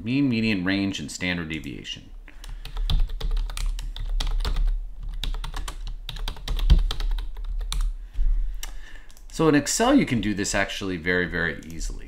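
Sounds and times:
low steady hum: 0.0s - 12.0s
typing on a computer keyboard: 2.4s - 7.9s.

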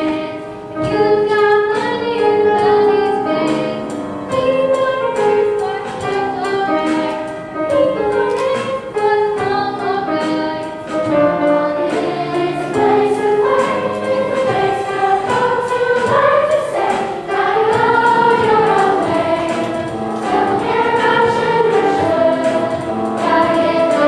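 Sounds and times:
children's choir singing: 0.0s - 24.0s
instrumental accompaniment: 0.0s - 24.0s.

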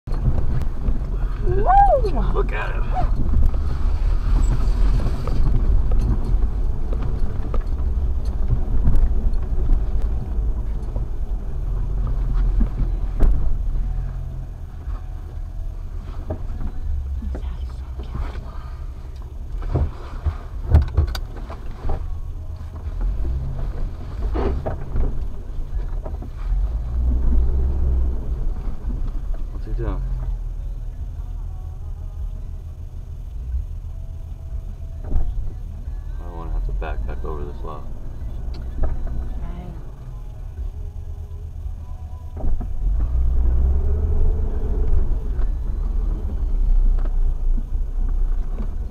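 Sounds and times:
vehicle engine rumbling: 0.0s - 48.9s
knocks and thumps over bumps: 0.1s - 1.8s, 2.9s - 14.2s, 19.5s - 30.4s, 42.3s - 48.9s.

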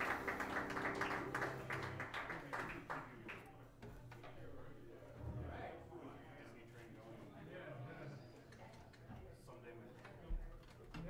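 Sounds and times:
scattered hand clapping: 0.0s - 3.5s.

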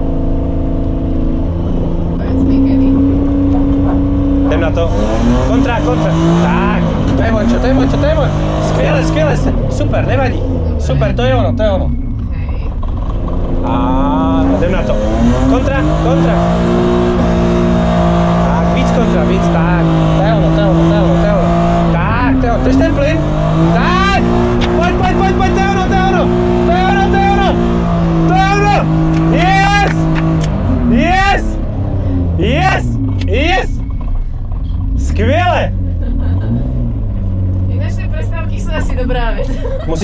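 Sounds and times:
car engine revving high: 0.0s - 12.2s, 12.8s - 40.0s
excited whooping cries: 28.2s - 30.1s.

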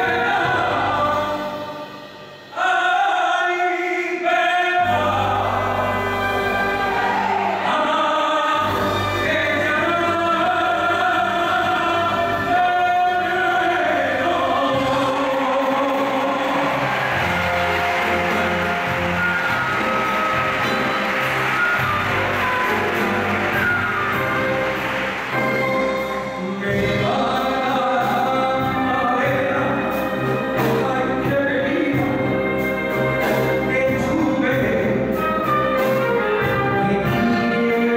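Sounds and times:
man singing: 0.0s - 6.9s, 7.6s - 17.5s, 25.6s - 37.9s
small orchestra playing: 0.0s - 37.9s.

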